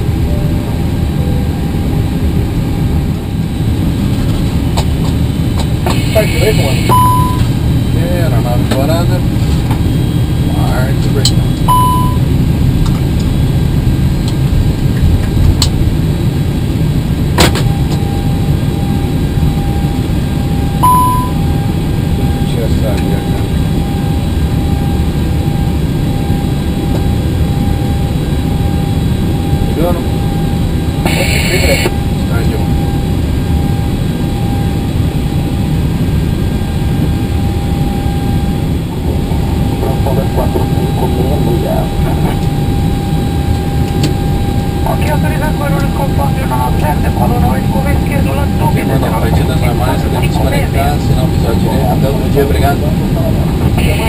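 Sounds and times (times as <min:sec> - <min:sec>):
rushing cockpit noise: 0:00.0 - 0:54.0
short beep: 0:05.9 - 0:07.5, 0:11.3 - 0:12.3, 0:20.8 - 0:21.5
high-pitched burst: 0:20.8 - 0:21.6, 0:31.0 - 0:32.5.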